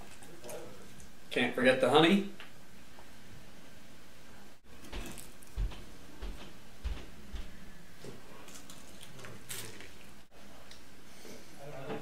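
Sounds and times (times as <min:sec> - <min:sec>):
biting food: 0:08.0 - 0:10.8.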